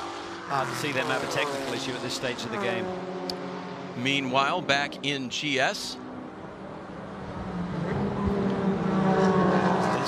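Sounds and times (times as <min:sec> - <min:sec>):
race car engines: 0:00.0 - 0:10.0.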